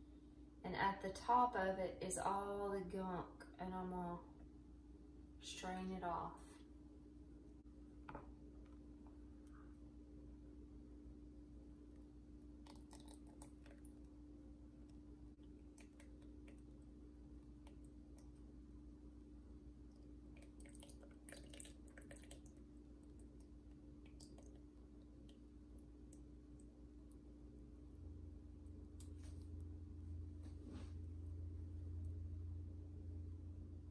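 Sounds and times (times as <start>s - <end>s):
low steady hum: 0.0s - 33.9s.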